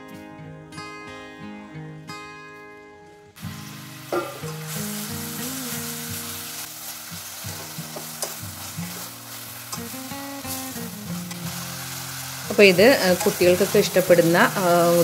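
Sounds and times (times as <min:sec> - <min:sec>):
carrot sizzling in hot oil: 0:03.4 - 0:15.0.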